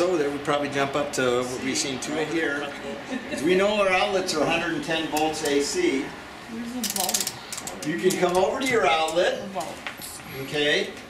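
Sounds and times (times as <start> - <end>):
small sharp ratchet-like clicks: 6.8 - 7.9.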